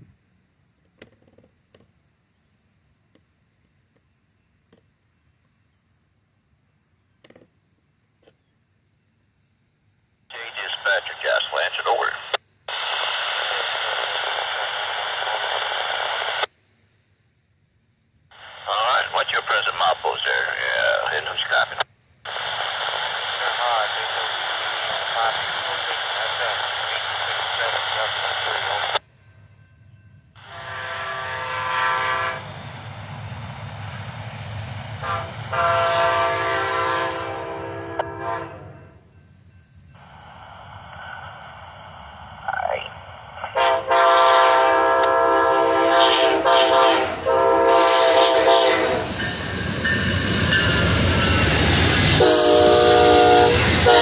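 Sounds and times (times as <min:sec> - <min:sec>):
radio scanner static: 0:10.3 - 0:16.5, 0:18.3 - 0:29.0, 0:40.0 - 0:44.1
train rumbling: 0:17.8 - 0:54.0
train horn blasts: 0:30.4 - 0:32.6, 0:35.0 - 0:39.0, 0:43.6 - 0:49.2, 0:52.2 - 0:54.0.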